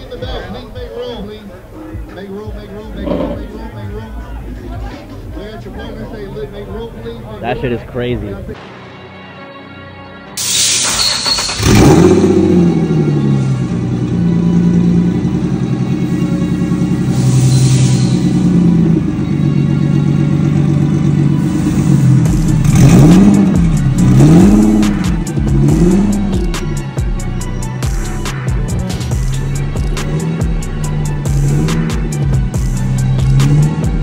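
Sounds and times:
car engine revving: 0:10.9 - 0:34.0.

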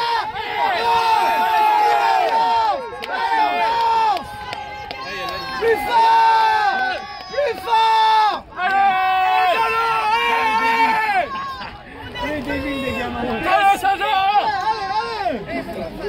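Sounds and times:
people shouting encouragement: 0:00.0 - 0:16.0.

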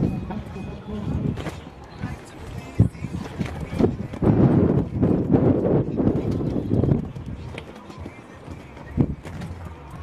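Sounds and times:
horse hooves on sand: 0:00.2 - 0:10.0.

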